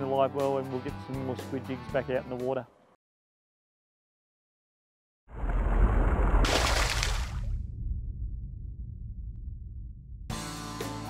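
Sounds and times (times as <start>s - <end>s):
deep rumbling impact: 5.4s - 10.4s.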